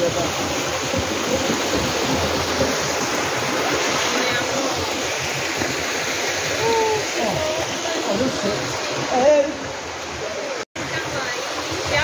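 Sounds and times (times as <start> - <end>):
stream rushing over boulders: 0.0 - 12.0.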